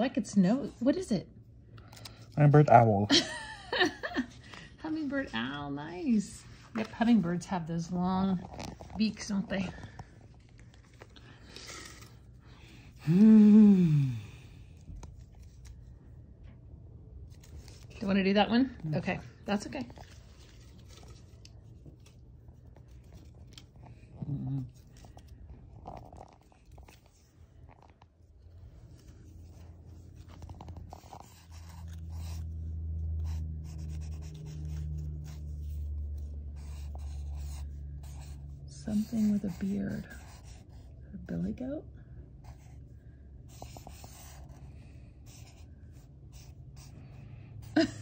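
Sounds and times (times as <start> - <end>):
paper crinkling: 19.8 - 32.4
marker scratching on paper: 29.3 - 40.9, 43.5 - 47.0.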